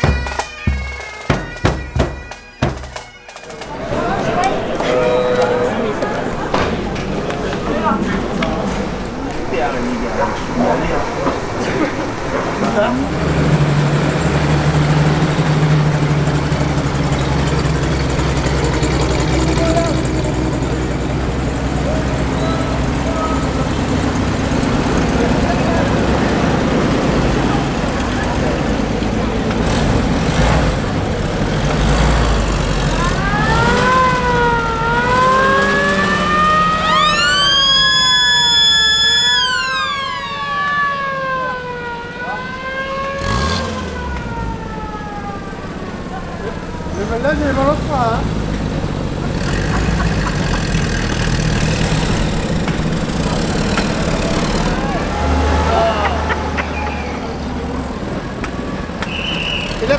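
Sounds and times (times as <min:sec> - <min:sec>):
military vehicle engines running: 0:00.0 - 0:59.9
siren wailing: 0:32.9 - 0:47.7.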